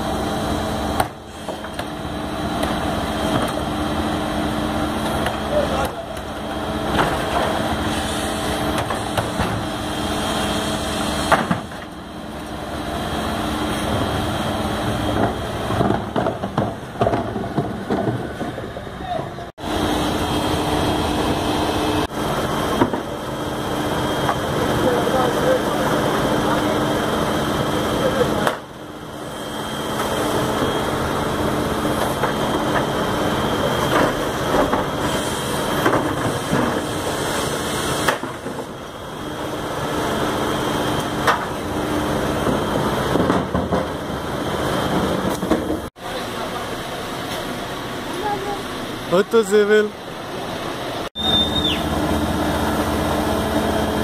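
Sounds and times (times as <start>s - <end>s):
garbage truck hum: 0.0s - 54.0s
people's voices: 24.4s - 28.6s, 46.0s - 50.0s.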